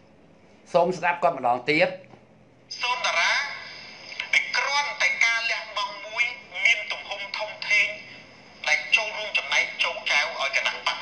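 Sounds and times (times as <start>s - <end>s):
man talking: 0.7s - 2.1s, 4.2s - 11.0s.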